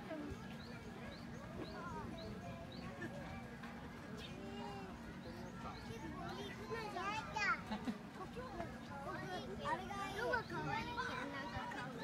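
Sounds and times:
children and people chattering: 0.0s - 12.0s.

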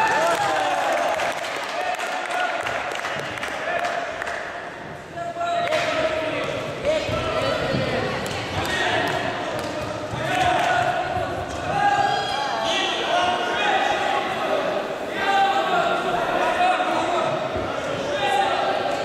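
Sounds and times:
voices shouting in a hall: 0.0s - 19.0s.

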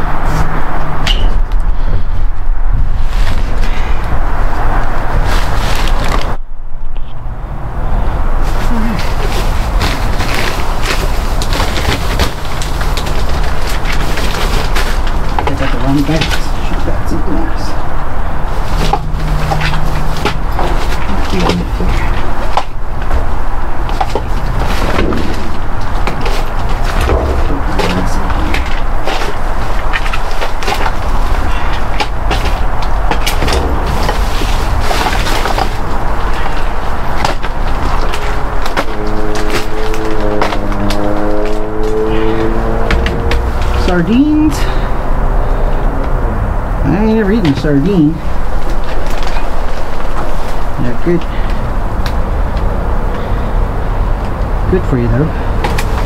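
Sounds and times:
droning hum: 0.0s - 56.0s
steady low rumble: 0.0s - 56.0s
rustling plastic bags and cardboard: 1.8s - 6.4s, 8.3s - 45.7s, 46.9s - 52.6s, 55.2s - 56.0s.

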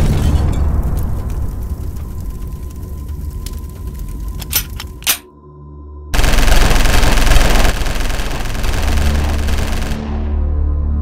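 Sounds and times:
rapid machine gun fire: 6.2s - 10.3s.

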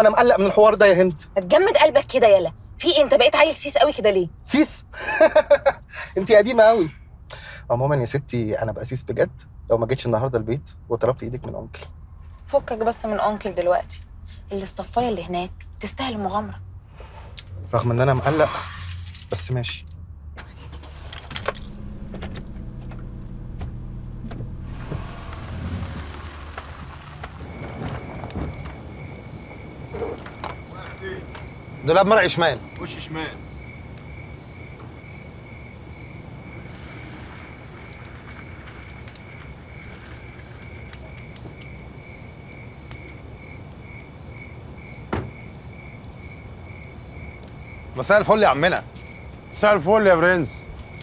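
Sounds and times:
crickets chirping: 0.0s - 19.9s, 20.5s - 51.0s
car engine humming: 11.6s - 51.0s.

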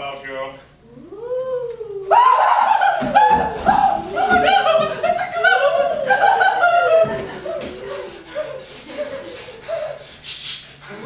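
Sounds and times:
person laughing loudly: 2.2s - 10.2s.

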